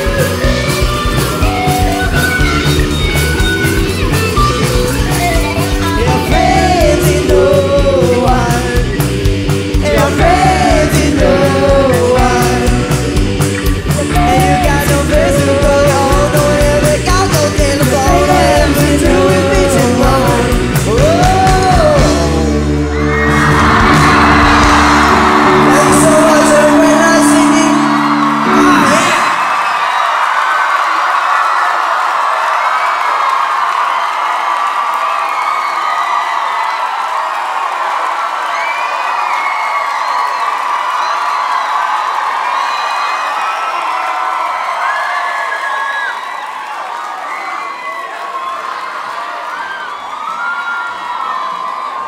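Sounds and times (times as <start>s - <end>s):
band guitars and drums: 0.0s - 29.9s
audience cheering and shouting: 0.0s - 52.0s.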